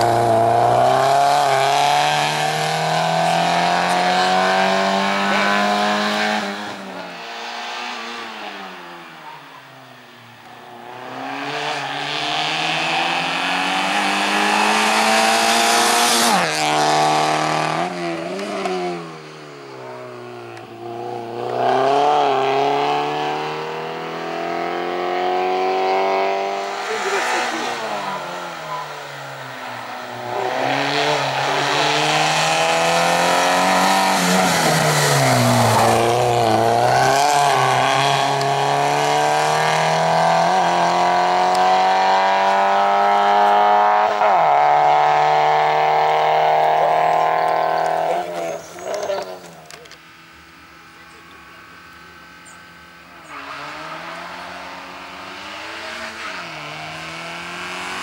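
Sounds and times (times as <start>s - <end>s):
race car engine revving: 0.0s - 9.7s, 10.5s - 58.0s.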